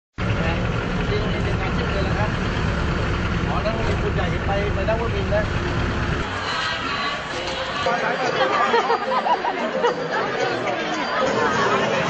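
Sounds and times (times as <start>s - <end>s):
vehicle engine idling: 0.2s - 7.9s.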